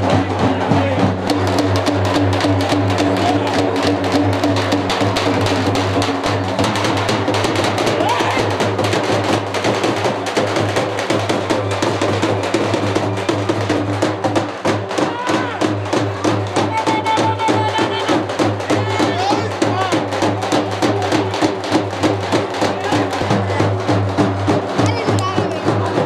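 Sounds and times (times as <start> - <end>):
music with fast dense drumming: 0.0 - 26.0.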